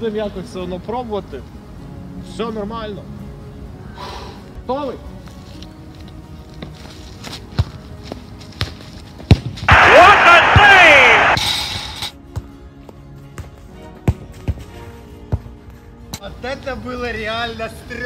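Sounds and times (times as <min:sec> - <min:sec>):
football kicked and bouncing: 0:07.3 - 0:09.7, 0:13.3 - 0:15.5
loud falling cry: 0:09.7 - 0:11.4.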